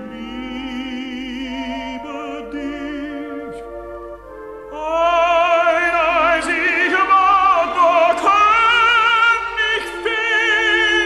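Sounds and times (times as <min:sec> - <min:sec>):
orchestra sustained chords: 0:00.0 - 0:11.0.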